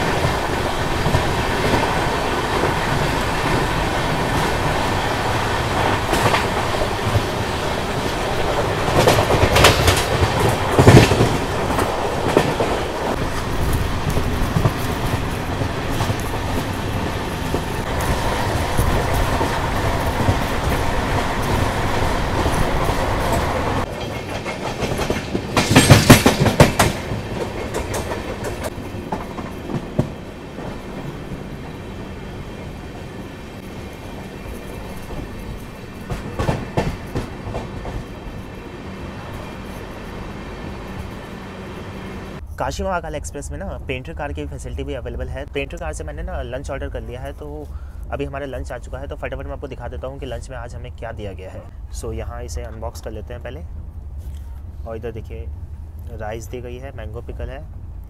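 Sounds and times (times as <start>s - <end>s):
rapid clickety-clack of train wheels: 0.0s - 31.9s, 33.9s - 40.2s
train wheels rumbling on rails: 0.0s - 58.0s.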